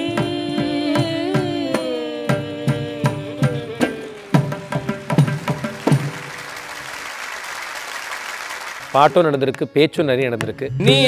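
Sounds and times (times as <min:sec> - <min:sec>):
mridangam drum strokes: 0:00.0 - 0:06.8
carnatic concert music: 0:00.0 - 0:11.0
audience applause: 0:03.8 - 0:09.4.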